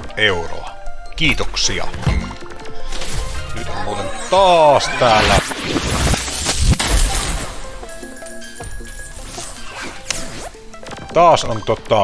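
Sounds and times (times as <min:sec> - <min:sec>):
game music: 0:00.0 - 0:12.0
glass-like shattering: 0:05.2 - 0:09.7.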